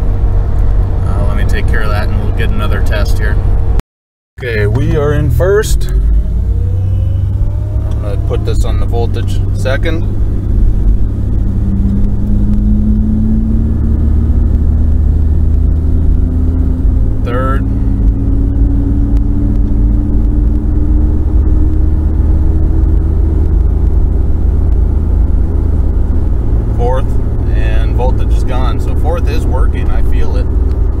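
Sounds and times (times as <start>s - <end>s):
car engine and road rumble: 0.0s - 3.8s, 4.4s - 31.0s.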